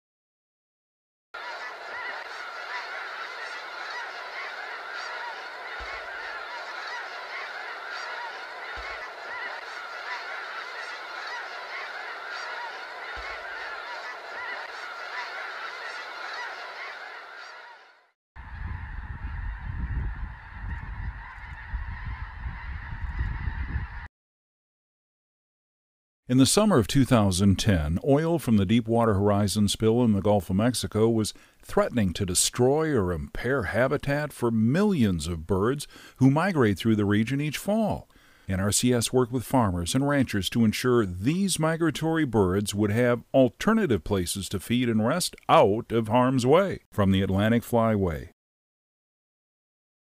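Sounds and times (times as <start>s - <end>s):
geese honking: 1.4s - 24.1s.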